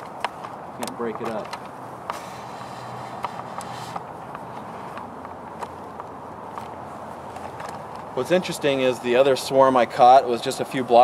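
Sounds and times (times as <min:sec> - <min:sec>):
branches rustling: 0:00.0 - 0:09.2
low background noise: 0:00.0 - 0:11.0.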